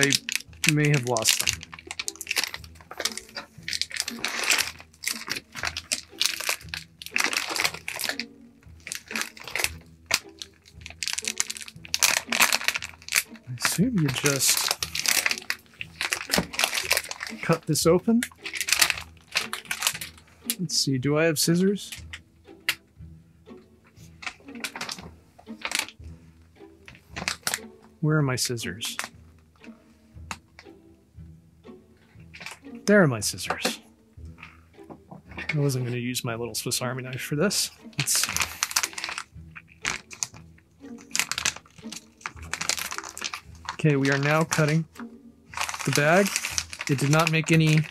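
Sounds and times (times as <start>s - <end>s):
scissors cutting plastic: 0.0s - 17.6s, 18.3s - 20.2s, 38.0s - 44.8s, 45.5s - 47.9s
plastic bag crinkling: 0.0s - 20.2s, 24.3s - 26.0s, 27.1s - 27.6s, 37.9s - 47.9s.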